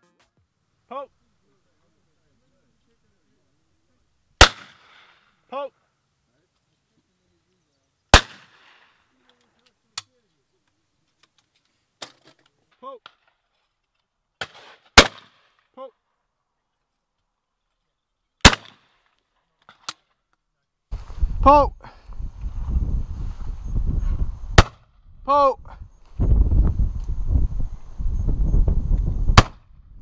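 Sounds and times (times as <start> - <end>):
shotgun shot: 4.4 - 5.2, 8.1 - 8.9, 14.4 - 15.5, 18.4 - 18.9, 24.5 - 24.9, 29.3 - 29.7
person shouting: 25.3 - 25.8.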